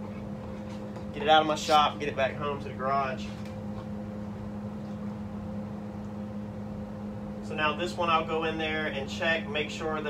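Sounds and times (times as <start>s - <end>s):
machine humming: 0.0s - 10.0s.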